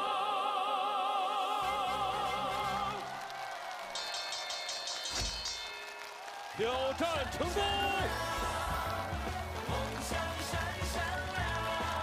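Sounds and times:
pulsing high ringing chime: 0:04.0 - 0:05.9.

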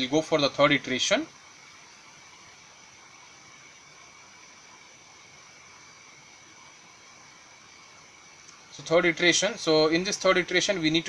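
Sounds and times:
faint background hiss: 0:00.0 - 0:11.0
thin high steady tones: 0:00.0 - 0:11.0.

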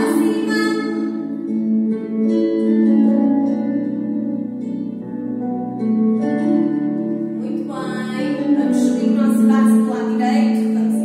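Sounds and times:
slow background music: 0:00.0 - 0:11.0.

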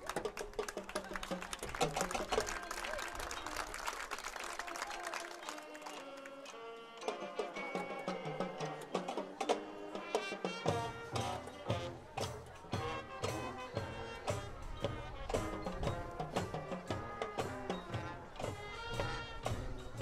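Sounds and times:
marching band brass and drums: 0:00.0 - 0:20.0.

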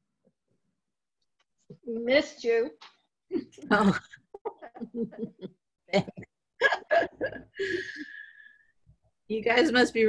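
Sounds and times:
person laughing over video call: 0:03.6 - 0:08.0.

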